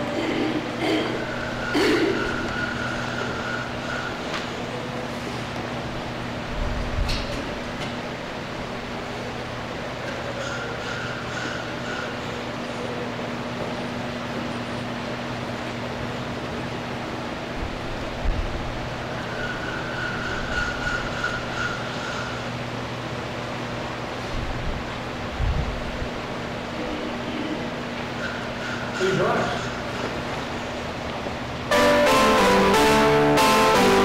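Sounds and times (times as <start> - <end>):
keyboard playing: 0.0 - 2.5, 31.7 - 34.0
steady electrical hum: 0.0 - 34.0.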